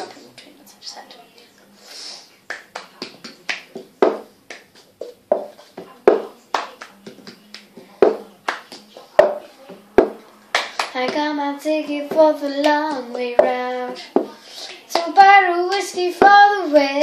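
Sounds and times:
hand claps: 2.5 - 9.4, 10.0 - 11.2, 12.1 - 15.9
taps on a table: 3.8 - 4.3, 5.0 - 6.3, 7.1 - 8.3, 9.2 - 9.4
cup knocked on tabletop: 5.0 - 6.3, 9.2 - 9.4.

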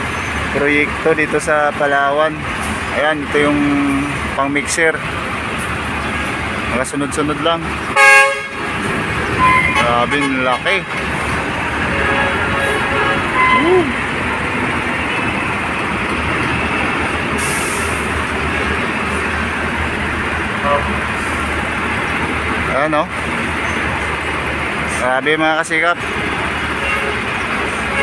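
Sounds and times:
trucks passing: 0.0 - 28.0
air brakes hissing: 17.3 - 18.2.

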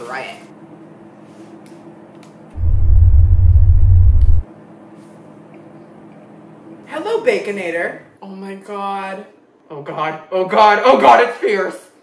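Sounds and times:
deep bass rumble: 2.6 - 4.4.

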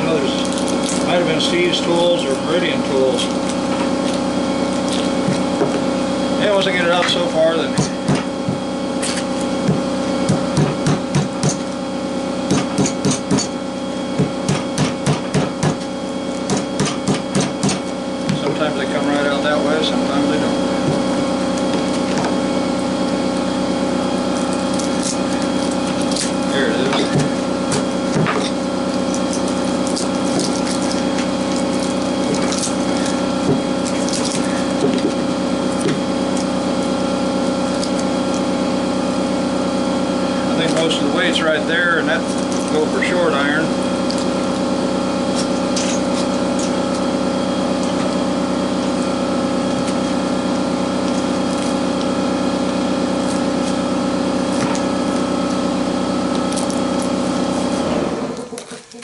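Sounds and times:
steady hum: 0.0 - 59.0.

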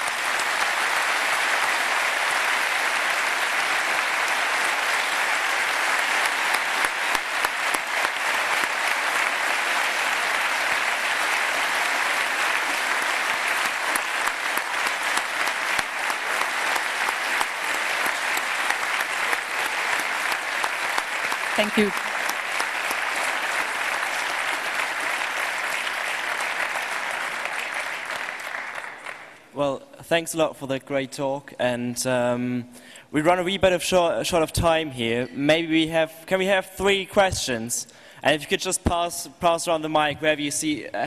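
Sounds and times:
audience applauding: 0.0 - 29.5.

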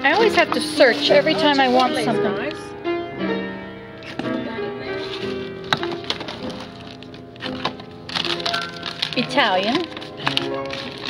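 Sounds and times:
classical piano music: 0.0 - 11.0.

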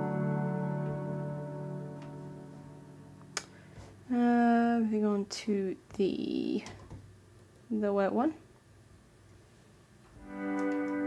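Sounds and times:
sustained electric guitar chord: 0.0 - 3.4, 10.2 - 11.0.

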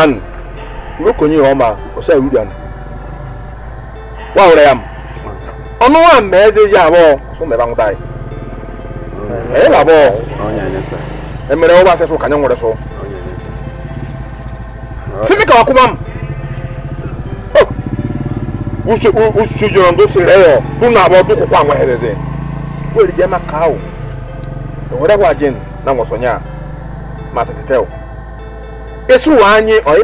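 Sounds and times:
faint level tones: 0.0 - 30.0
low droning hum with buzz: 0.0 - 30.0
man speaking: 9.2 - 13.4.

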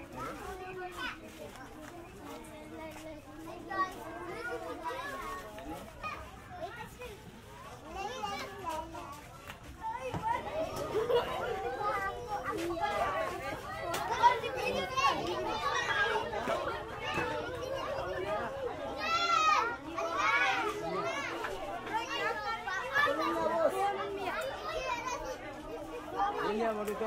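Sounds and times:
children chattering and calling out: 0.0 - 27.0.

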